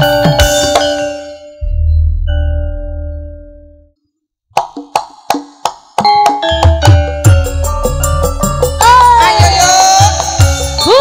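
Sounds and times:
band playing: 6.1 - 11.0.

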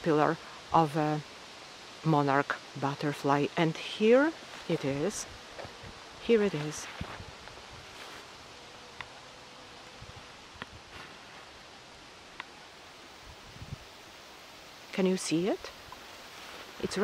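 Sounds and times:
outdoor background hiss: 0.0 - 17.0.

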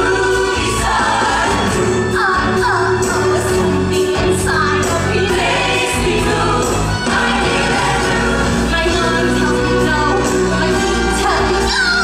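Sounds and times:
ensemble singing together: 0.0 - 9.3
musical accompaniment: 0.0 - 12.0.

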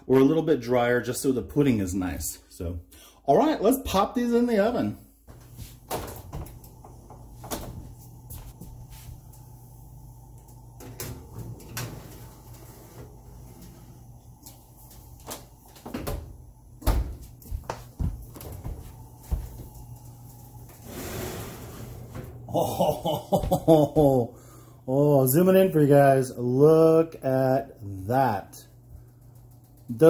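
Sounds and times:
steady low hum: 4.6 - 30.0
oven door opening: 10.7 - 14.1, 20.8 - 22.5.

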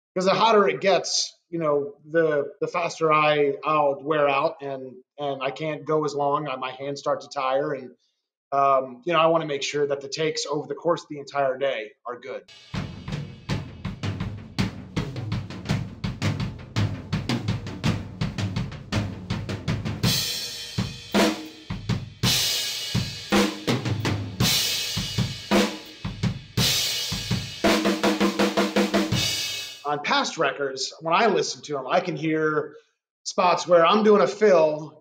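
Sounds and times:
crash cymbals: 12.5 - 13.8
tom drum hits: 12.5 - 29.6
drum kit playing: 12.5 - 30.0.

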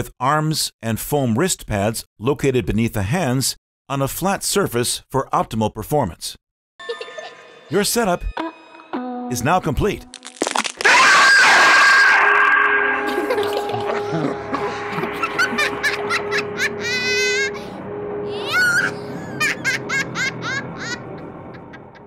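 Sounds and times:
steady low drone: 12.2 - 22.0
wavering voice-like cries: 13.0 - 21.0.

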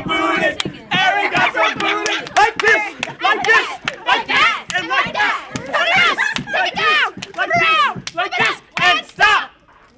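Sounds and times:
young people yelling and cheering: 0.0 - 9.6.

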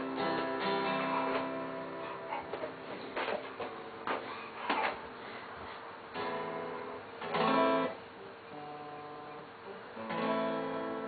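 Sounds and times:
acoustic guitar chord ringing: 0.0 - 2.2, 6.2 - 11.0.

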